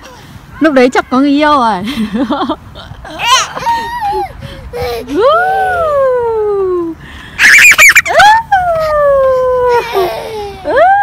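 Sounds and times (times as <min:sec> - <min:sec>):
toddler squealing with laughter: 0:03.1 - 0:06.0, 0:07.4 - 0:11.0.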